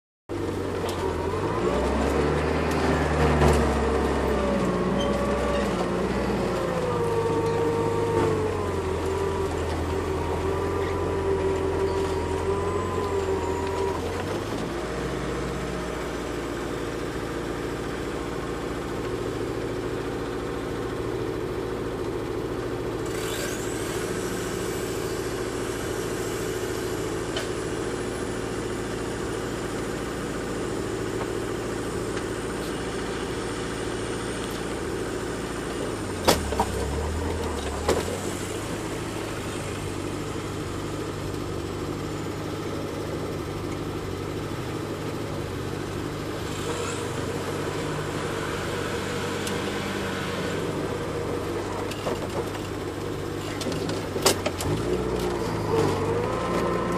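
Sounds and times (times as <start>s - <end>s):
vehicle engines droning: 0.3s - 56.9s.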